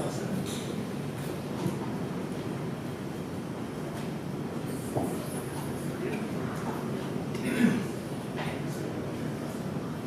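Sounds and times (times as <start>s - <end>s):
low rumbling room noise: 0.0s - 10.0s.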